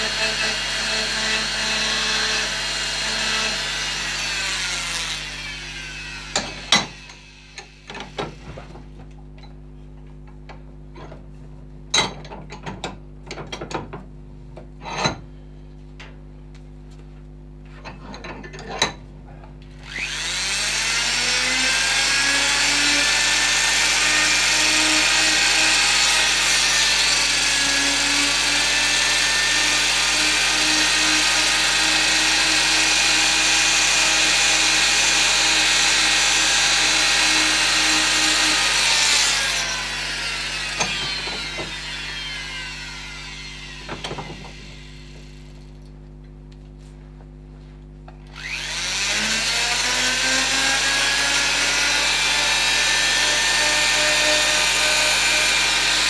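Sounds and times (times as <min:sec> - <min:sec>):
rotary carving tool cutting wood: 0:00.0 - 0:08.8, 0:19.8 - 0:45.6, 0:48.3 - 0:56.0.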